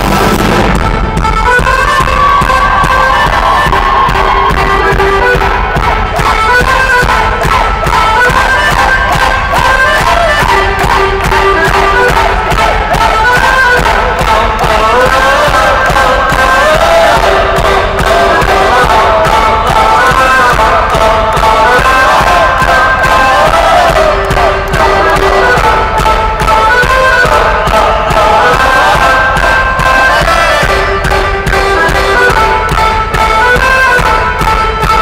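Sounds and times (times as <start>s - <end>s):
fiddle-like lead melody: 0.0s - 35.0s
live rock band playing: 0.0s - 35.0s
steady drumbeat: 0.0s - 35.0s.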